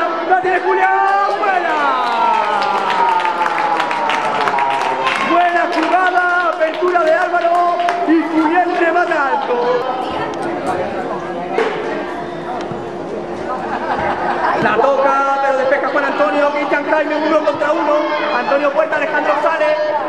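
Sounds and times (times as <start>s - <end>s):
voices chattering and calling: 0.0s - 20.0s.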